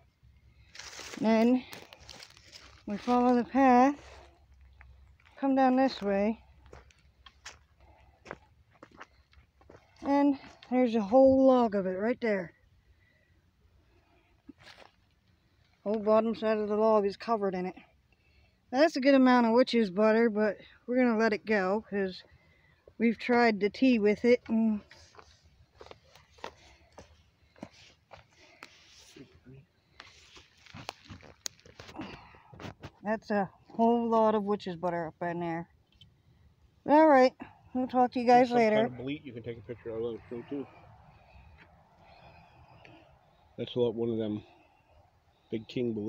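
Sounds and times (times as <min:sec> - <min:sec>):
footsteps on dry leaves and twigs: 0:00.6 - 0:10.7, 0:14.5 - 0:15.2, 0:24.8 - 0:33.0.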